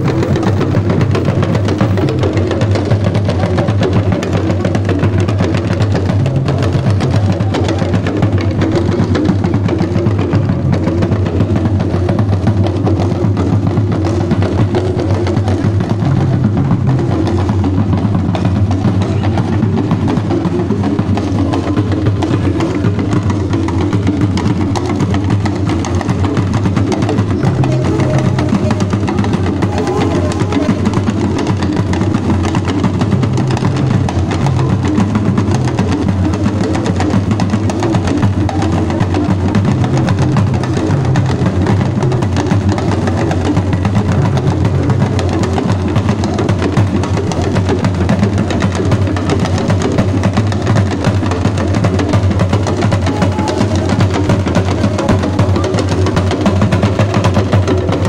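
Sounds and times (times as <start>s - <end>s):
drum ensemble playing dance rhythm: 0.0s - 58.0s.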